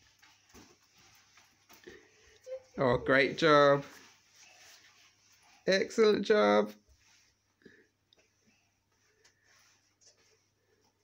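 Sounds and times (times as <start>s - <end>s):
clothing rustling: 0.0s - 11.0s.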